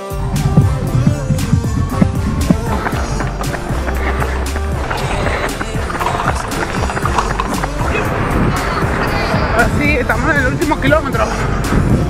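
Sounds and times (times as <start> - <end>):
low rumbling noise: 0.0 - 12.0
music with steady beat: 0.0 - 12.0.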